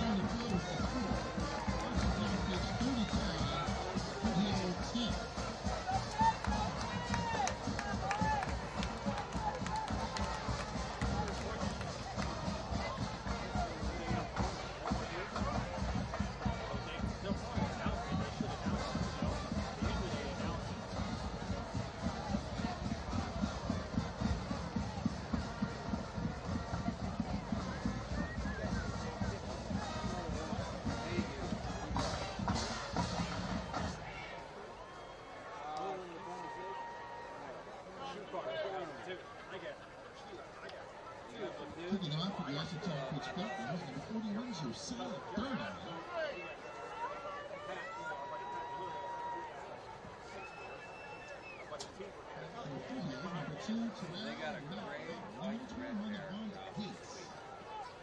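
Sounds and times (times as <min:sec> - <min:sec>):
music playing: 0:00.0 - 0:35.0
stadium crowd cheering: 0:00.0 - 0:58.0.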